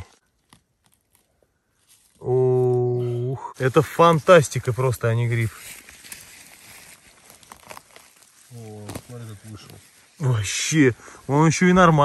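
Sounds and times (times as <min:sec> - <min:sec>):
fingers rustling moss and grass: 0:00.0 - 0:12.0.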